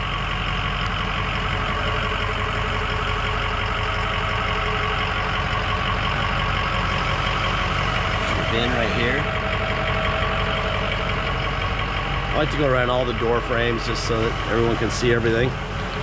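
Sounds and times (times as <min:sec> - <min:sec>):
diesel engine idling: 0:00.0 - 0:16.0.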